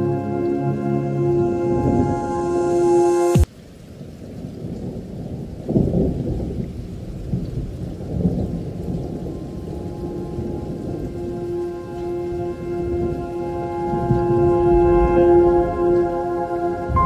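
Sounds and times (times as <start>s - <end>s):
background music: 0.0s - 3.5s, 9.5s - 17.0s
low rumbling outdoor noise: 8.4s - 17.0s.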